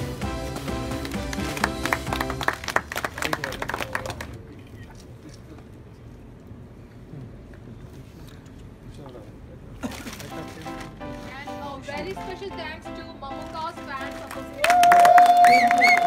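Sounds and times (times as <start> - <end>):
music playing: 0.0 - 2.8, 10.3 - 16.0
sharp claps: 0.3 - 4.4, 14.3 - 16.0.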